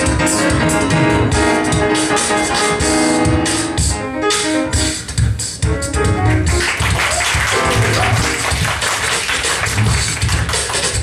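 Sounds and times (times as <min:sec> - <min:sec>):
beatboxing: 0:00.0 - 0:11.0.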